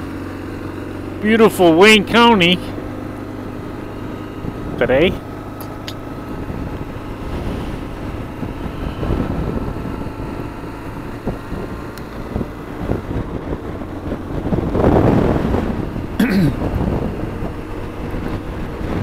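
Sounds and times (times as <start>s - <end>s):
motorcycle engine running: 0.0s - 19.0s
wind rushing over microphone: 2.8s - 19.0s.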